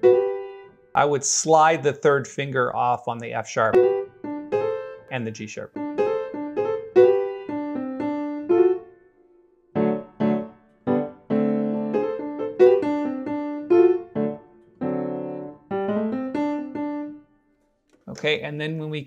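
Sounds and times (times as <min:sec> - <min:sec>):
solo piano jazz-blues lick: 0:00.0 - 0:00.9, 0:03.7 - 0:17.6.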